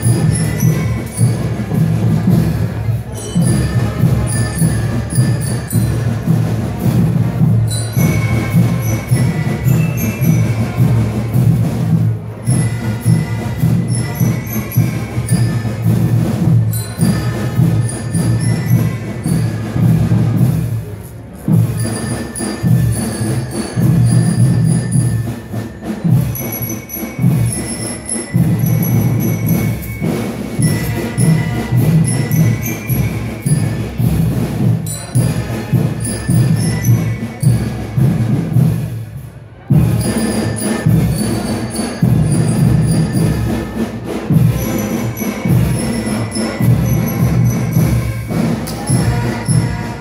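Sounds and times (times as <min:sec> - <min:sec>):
held high tone: 0:00.0 - 0:38.7, 0:39.6 - 0:50.0
bell-like notes: 0:00.0 - 0:39.0, 0:39.7 - 0:50.0
drums beating steady pulse: 0:00.0 - 0:50.0.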